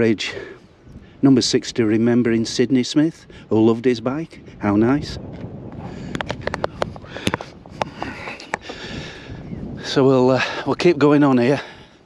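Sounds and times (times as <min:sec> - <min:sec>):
camera handling clicks and taps: 0:06.1 - 0:08.7.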